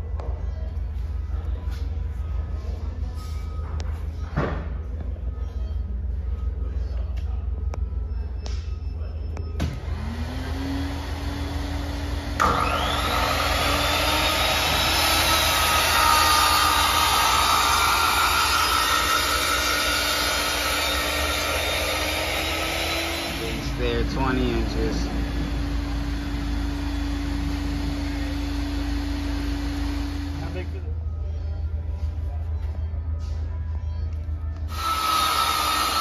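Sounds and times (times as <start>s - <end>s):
saw motor whine: 9.7s - 30.8s, 34.7s - 36.0s
saw blade cutting wood: 12.4s - 24.9s.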